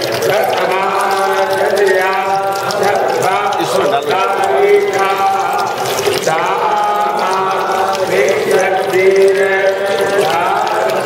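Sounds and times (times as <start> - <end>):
voices chanting devotionally: 0.0 - 11.0.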